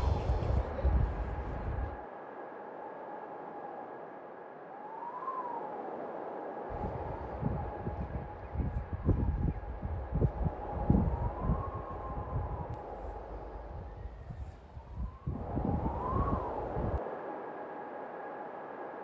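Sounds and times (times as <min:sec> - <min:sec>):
wind buffeting microphone: 0:00.0 - 0:02.0, 0:05.4 - 0:17.0.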